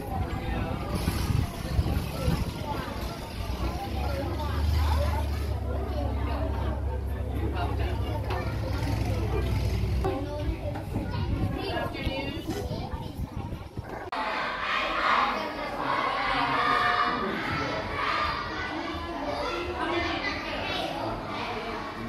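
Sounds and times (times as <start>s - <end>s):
children chattering: 0.0s - 22.0s.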